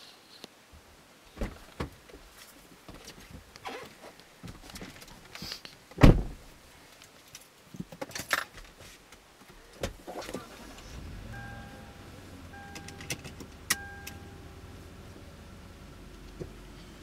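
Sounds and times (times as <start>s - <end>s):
car door shutting: 6.0s - 6.4s, 9.8s - 14.4s
car engine starting and running: 9.9s - 17.0s
dashboard warning chime: 11.2s - 14.9s.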